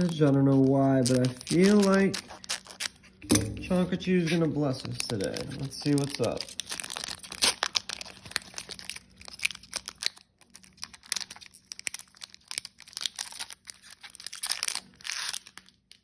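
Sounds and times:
foil wrapper crinkling: 0:00.0 - 0:16.0.

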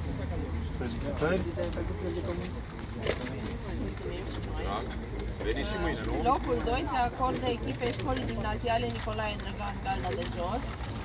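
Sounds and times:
people talking indistinctly: 0:00.0 - 0:10.8.

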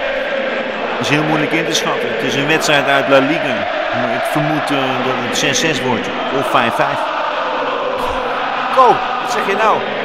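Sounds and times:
stadium crowd fans chanting: 0:00.0 - 0:10.0
man speaking: 0:01.0 - 0:07.0, 0:08.0 - 0:09.8.

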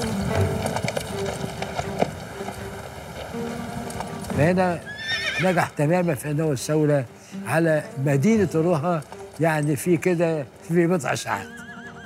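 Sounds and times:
hoof knocks: 0:00.0 - 0:05.8
low jumble of horses moving: 0:00.0 - 0:12.0.

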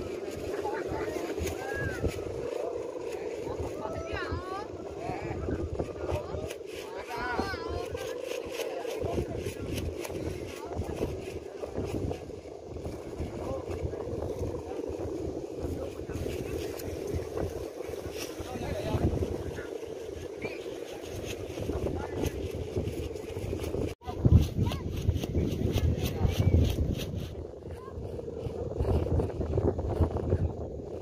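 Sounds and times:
kite hummers droning: 0:00.0 - 0:31.0
wind rumbling on microphone: 0:00.0 - 0:31.0.

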